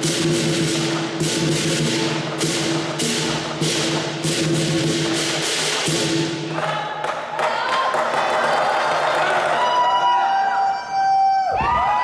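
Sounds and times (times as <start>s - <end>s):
drum gong and cymbal band: 0.0s - 6.6s.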